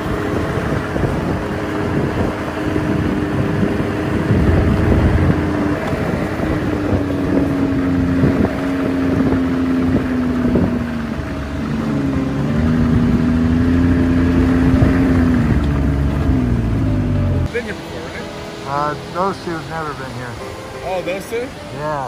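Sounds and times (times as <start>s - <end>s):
snowmobile engine running: 0.0s - 20.4s.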